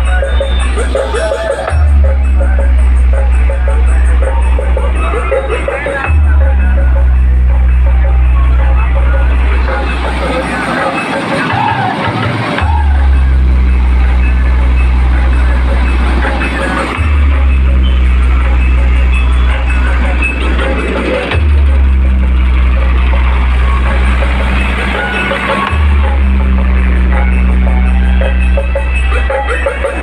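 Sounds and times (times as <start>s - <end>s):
bass-heavy music on sound system: 0.0s - 30.0s.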